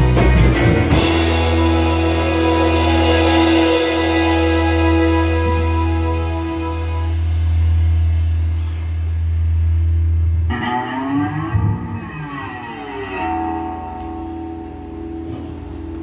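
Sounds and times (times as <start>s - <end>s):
deep bass note: 0.0s - 16.0s
electric guitar chord ringing: 0.0s - 16.0s.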